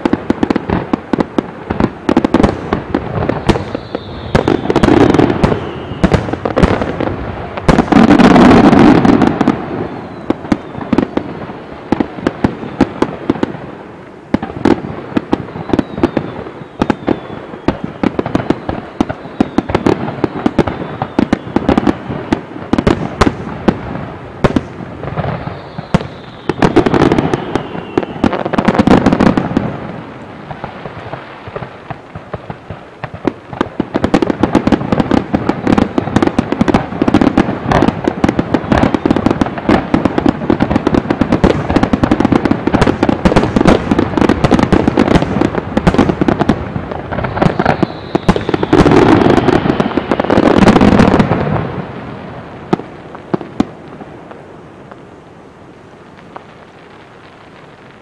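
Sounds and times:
fireworks bursting: 0:00.0 - 0:58.0
falling firework whistles: 0:02.2 - 0:11.4, 0:14.6 - 0:23.4, 0:24.5 - 0:29.7, 0:47.1 - 0:51.7.

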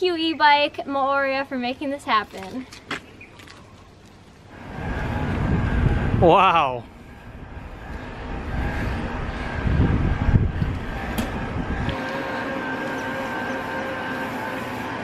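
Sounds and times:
wind: 0:00.0 - 0:15.0
road rumble: 0:02.1 - 0:15.0
electric bike motor whining: 0:04.5 - 0:15.0.

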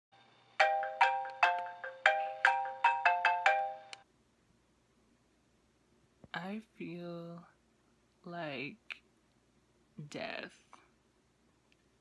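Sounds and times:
phone alarm melody: 0:00.6 - 0:04.0.

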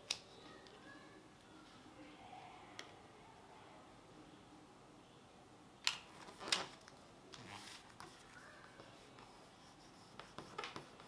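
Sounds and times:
fingertips rubbing on paper: 0:07.5 - 0:11.0.

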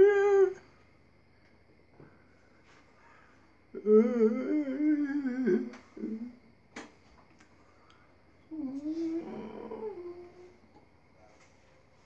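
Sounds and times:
person humming wavering note: 0:03.8 - 0:06.4, 0:08.5 - 0:10.6.

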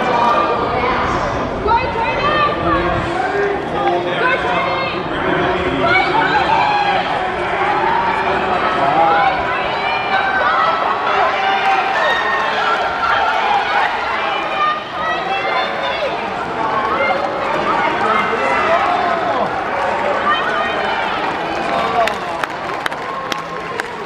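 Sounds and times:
people calling and shouting: 0:00.0 - 0:24.0.

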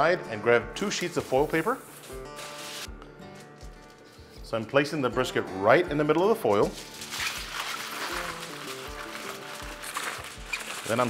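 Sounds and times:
background music with soft beat: 0:00.0 - 0:11.0
aluminium foil crinkling: 0:00.9 - 0:04.4, 0:06.4 - 0:11.0.

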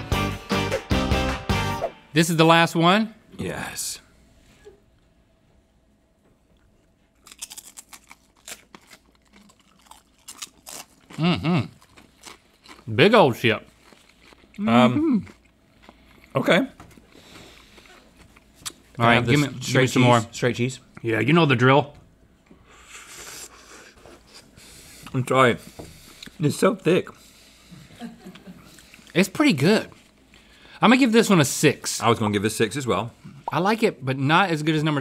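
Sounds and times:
crunching chips: 0:07.2 - 0:14.6.

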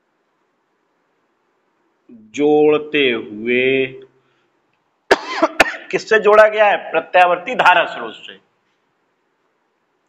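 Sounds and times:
man speaking: 0:02.1 - 0:04.2, 0:05.6 - 0:08.5
man coughing: 0:05.1 - 0:06.0.

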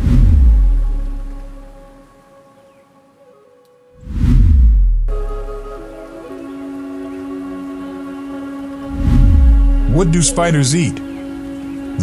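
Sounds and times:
sustained synth chord: 0:05.1 - 0:12.0.

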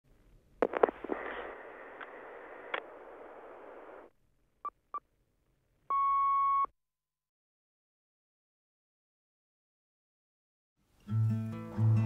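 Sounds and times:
long steady beep: 0:05.9 - 0:06.7.

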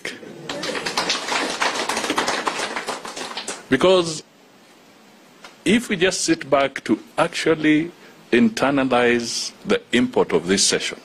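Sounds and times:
audience applauding: 0:00.4 - 0:03.7.

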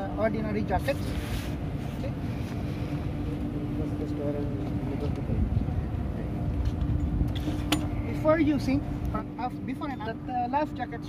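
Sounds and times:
machinery hum: 0:00.0 - 0:11.0
wind buffeting microphone: 0:01.6 - 0:09.4.

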